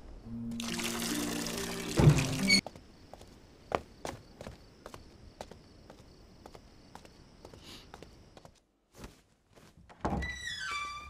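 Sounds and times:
door creaking: 2.0s - 2.6s, 10.0s - 11.0s.

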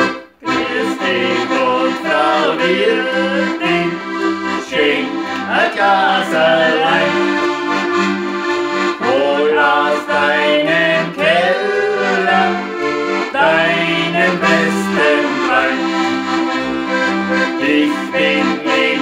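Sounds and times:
rhythmic bass: 0.0s - 17.6s
accordions playing folk song: 0.0s - 19.0s
man and woman singing: 0.5s - 4.0s, 4.6s - 7.2s, 9.0s - 12.7s, 13.4s - 15.9s, 17.6s - 19.0s.

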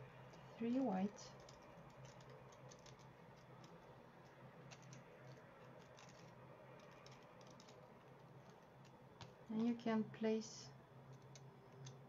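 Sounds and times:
crinkly paper ticks: 1.2s - 9.8s.

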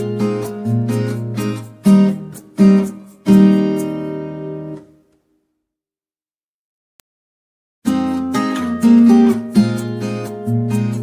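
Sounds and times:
acoustic guitar strumming chords: 0.0s - 5.1s, 7.8s - 11.0s.

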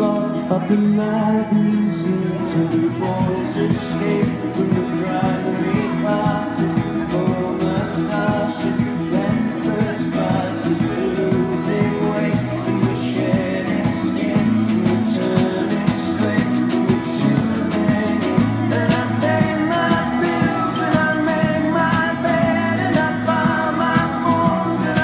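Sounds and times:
electric and acoustic guitars: 0.0s - 25.0s
person singing: 0.0s - 25.0s.

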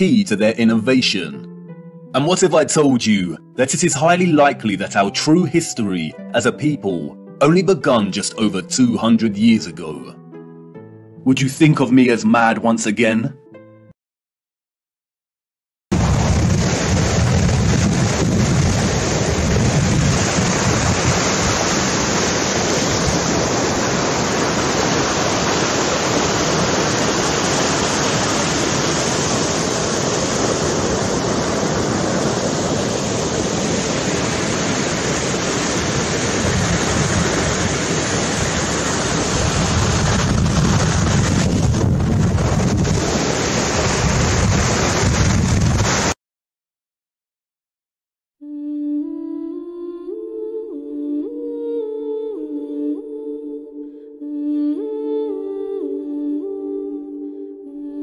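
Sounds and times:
rushing water with deep rumble: 16.0s - 46.2s.

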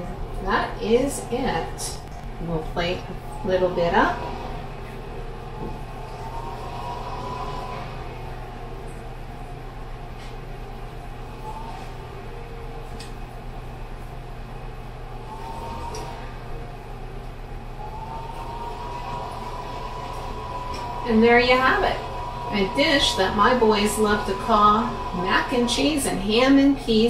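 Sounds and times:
low kitchen hum: 0.0s - 27.0s.

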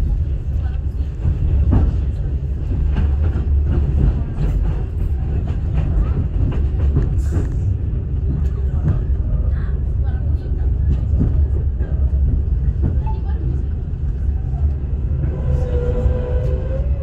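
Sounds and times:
train rumbling: 0.0s - 17.0s.

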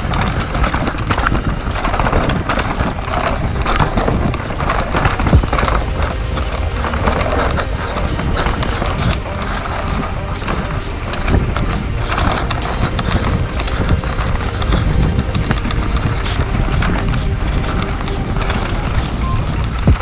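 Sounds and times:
bike chain and frame rattling: 0.0s - 20.0s
bike tyres rolling and skidding on dirt: 0.0s - 20.0s.

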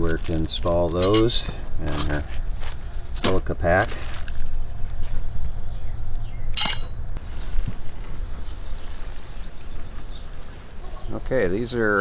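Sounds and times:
metal hardware ringing clink: 6.6s - 7.0s.

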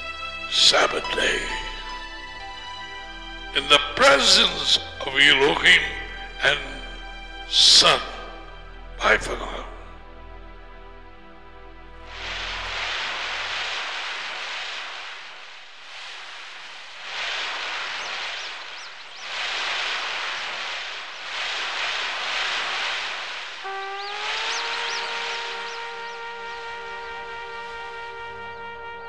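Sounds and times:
ocean surf breaking: 12.0s - 27.8s
sustained musical note: 23.6s - 29.0s.

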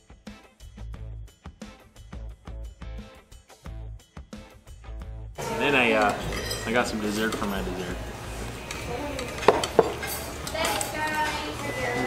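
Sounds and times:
dishes and cutlery clinking: 5.4s - 8.0s, 8.6s - 12.0s.

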